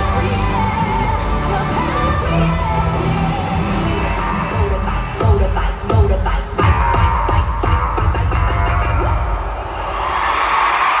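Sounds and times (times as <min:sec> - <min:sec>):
live pop concert music: 0:00.0 - 0:11.0.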